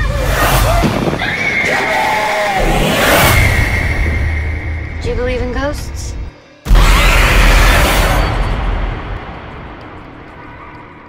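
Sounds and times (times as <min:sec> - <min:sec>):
dark score music: 0:00.0 - 0:11.0
wavering scream: 0:00.2 - 0:04.8, 0:06.7 - 0:08.5.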